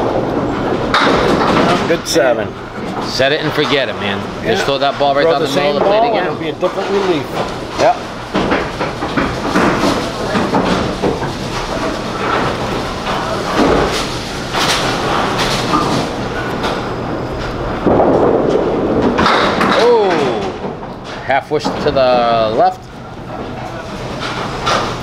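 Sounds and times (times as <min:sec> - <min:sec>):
bowling ball rolling on wooden lane: 0:00.0 - 0:25.0
voices: 0:01.6 - 0:08.1, 0:19.3 - 0:24.4.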